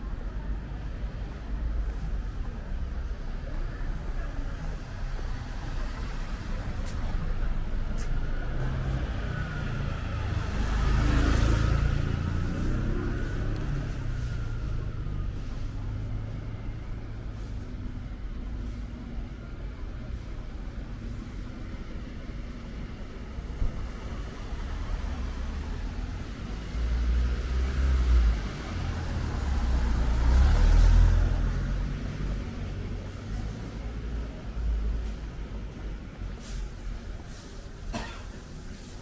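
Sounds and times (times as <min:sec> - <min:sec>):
street traffic rumble: 0:00.0 - 0:39.0
car driving past: 0:24.5 - 0:33.8.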